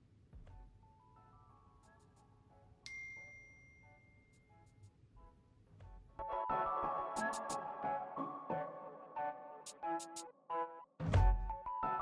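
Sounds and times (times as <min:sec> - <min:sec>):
faint background music: 0:00.0 - 0:12.0
bell-like chime: 0:02.9 - 0:04.6.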